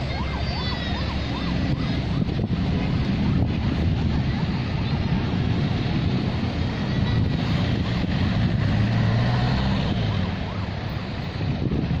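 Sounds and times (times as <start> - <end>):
traffic passing by: 0.0 - 12.0
wind buffeting microphone: 0.0 - 12.0.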